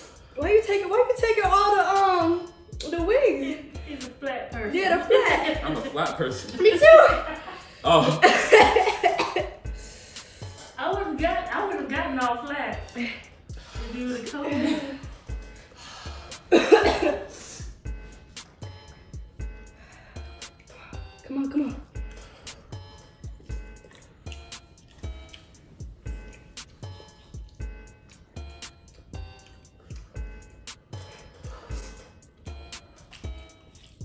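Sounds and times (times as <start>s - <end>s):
background music with low beat: 0.0s - 34.0s
woman coughing: 7.9s - 9.6s, 13.0s - 15.1s, 16.4s - 17.4s.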